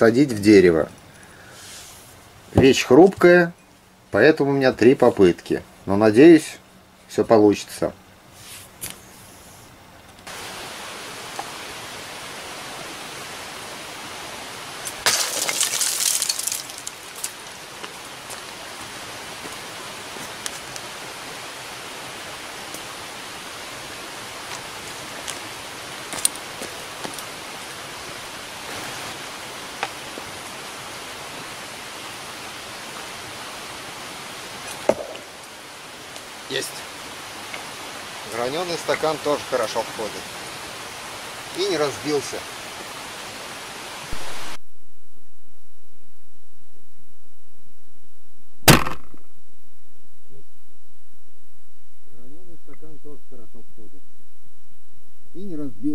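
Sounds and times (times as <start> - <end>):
steady outdoor hiss: 0.0 - 55.9
glass striking wooden target: 15.0 - 16.6, 34.9 - 35.3, 48.7 - 49.3
loud burst of noise: 44.1 - 52.1.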